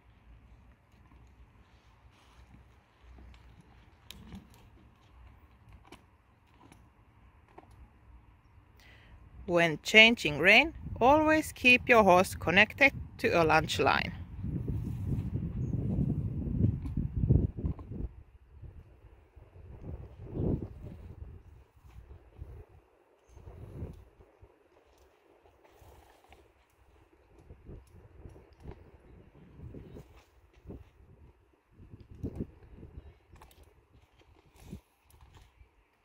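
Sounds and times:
horse thuds and rustles: 0:01.0 - 0:06.9, 0:14.4 - 0:18.2.

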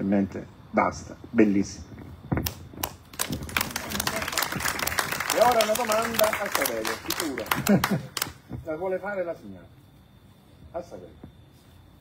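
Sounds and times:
audience applauding: 0:02.8 - 0:08.4.

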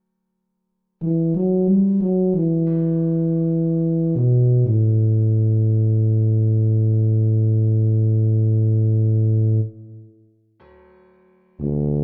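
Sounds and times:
synthesized tuba note: 0:01.0 - 0:10.2, 0:11.6 - 0:12.0.

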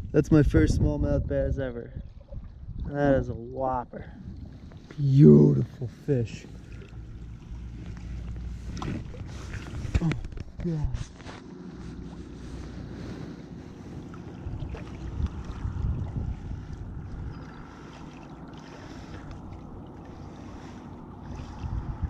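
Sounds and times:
wind buffeting microphone: 0:00.0 - 0:22.0
small waves lapping: 0:01.9 - 0:22.0.

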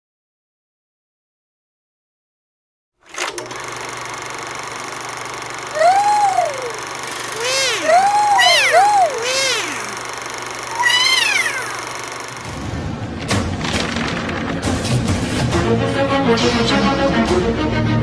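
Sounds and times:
steady whirring hum: 0:04.3 - 0:12.6
cute robot voices ooh calls: 0:05.7 - 0:12.4.

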